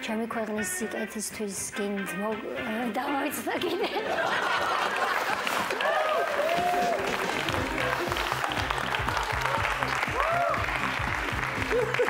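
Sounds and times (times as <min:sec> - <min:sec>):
audience laughter: 0:03.5 - 0:05.8, 0:11.6 - 0:12.0
audience applauding: 0:04.2 - 0:12.0
music with steady bass line: 0:07.1 - 0:12.0.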